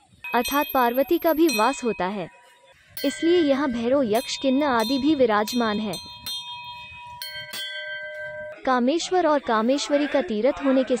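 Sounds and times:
brass temple bells ringing: 0.3 - 2.1, 3.0 - 8.7.

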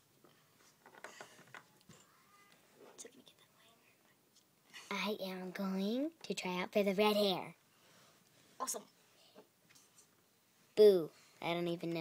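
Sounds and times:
faint whispering: 1.9 - 5.0.

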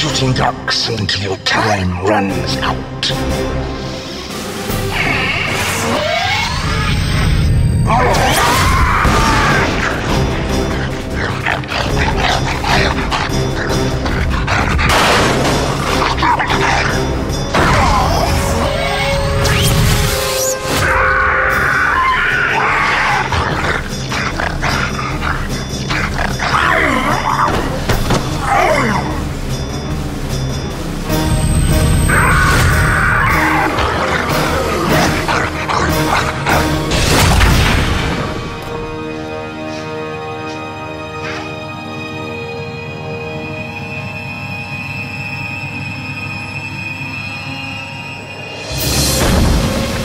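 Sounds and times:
loud film score: 0.0 - 50.0
monster roaring and snarling: 7.8 - 19.5, 20.7 - 29.3, 32.1 - 38.4.

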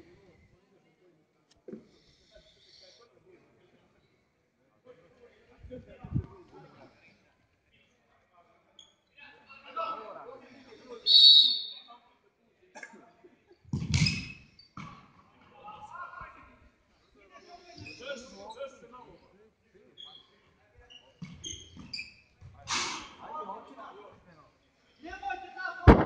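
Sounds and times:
ball kicked on hard court: 13.7 - 14.2.

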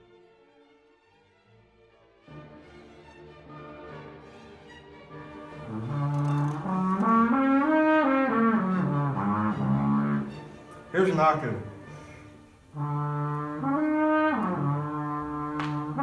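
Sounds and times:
garden hose horn notes: 5.6 - 16.0.

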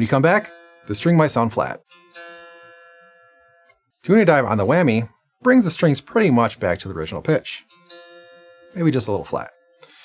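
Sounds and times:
electric guitar string ringing: 0.0 - 10.0.

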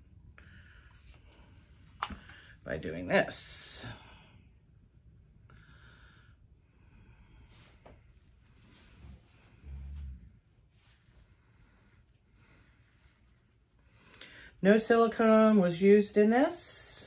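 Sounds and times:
soft breath: 0.3 - 2.6, 5.5 - 14.6.

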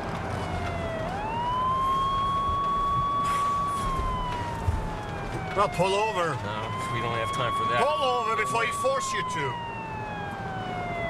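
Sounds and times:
car low rumble: 0.0 - 11.0
police siren wailing: 0.0 - 11.0.

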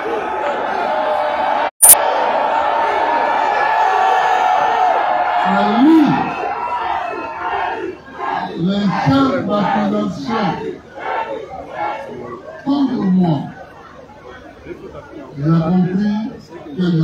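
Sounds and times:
crowd cheering and shouting: 0.0 - 13.1.

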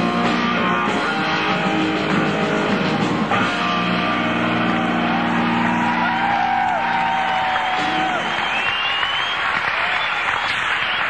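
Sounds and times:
electric guitar and bass chord: 0.0 - 6.6.

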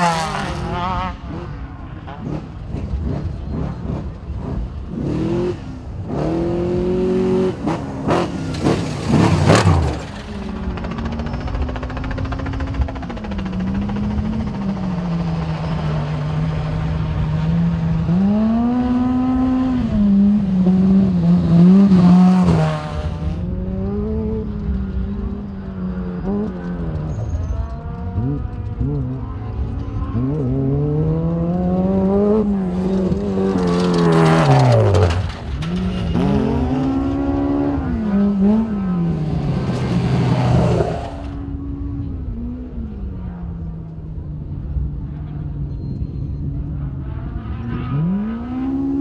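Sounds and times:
side-by-side engine revving: 0.0 - 45.6, 46.5 - 49.0
race truck engine revving: 26.0 - 41.5.

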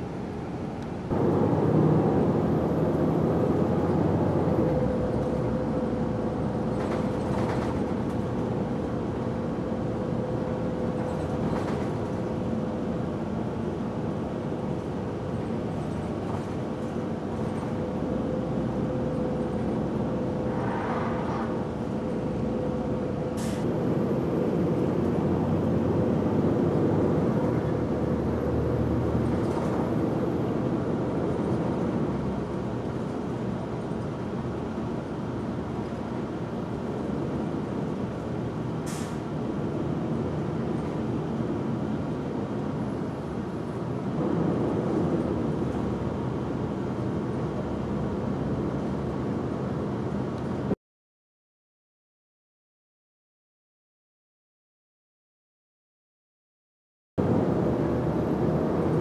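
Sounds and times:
bus engine and road rumble: 0.0 - 50.8, 57.2 - 59.0.

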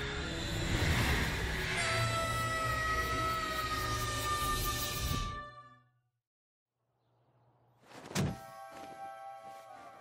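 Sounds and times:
soft background music: 8.3 - 10.0.

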